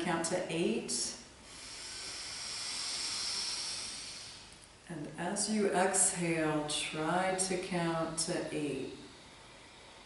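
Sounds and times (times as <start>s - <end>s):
deep inhale through the nose: 1.4s - 4.6s, 9.0s - 10.0s.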